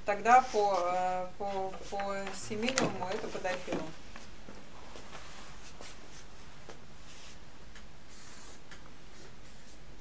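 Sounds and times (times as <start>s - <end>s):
woman speaking: 0.0s - 4.0s.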